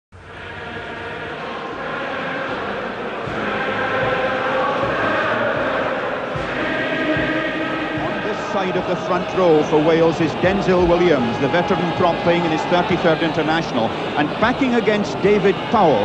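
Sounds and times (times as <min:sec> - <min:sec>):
crowd singing chant-like song: 0:00.2 - 0:16.0.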